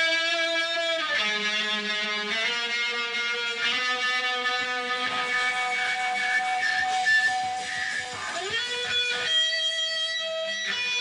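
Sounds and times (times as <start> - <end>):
distorted electric guitar note: 0.0 - 11.0.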